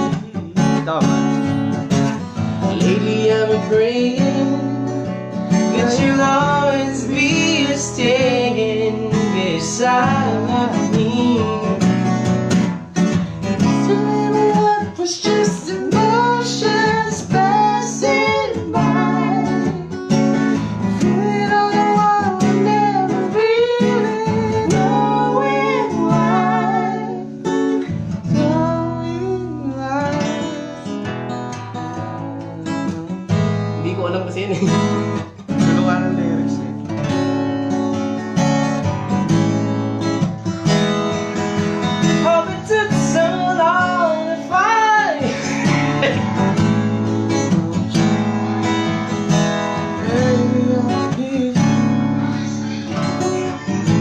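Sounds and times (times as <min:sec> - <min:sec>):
acoustic guitar strummed: 0:00.0 - 0:54.0
man singing wordless runs: 0:05.7 - 0:11.9, 0:13.3 - 0:19.8.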